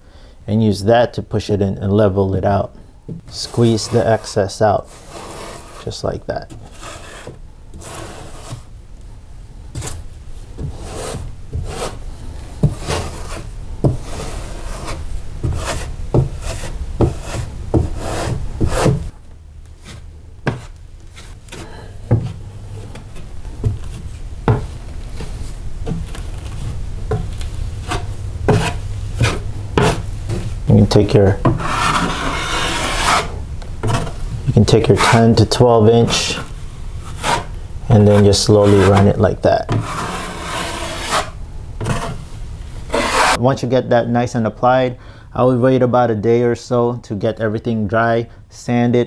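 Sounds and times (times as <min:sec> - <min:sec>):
taping knife scraping drywall: 0:03.3 - 0:08.7, 0:10.6 - 0:12.0, 0:12.6 - 0:19.1, 0:25.2 - 0:35.4, 0:36.1 - 0:42.3, 0:42.9 - 0:43.4.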